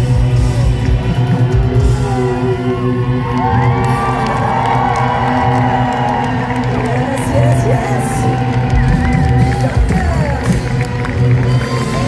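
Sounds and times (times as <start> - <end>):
live rock band playing: 0.0 - 4.2
audience cheering and whooping: 0.3 - 12.0.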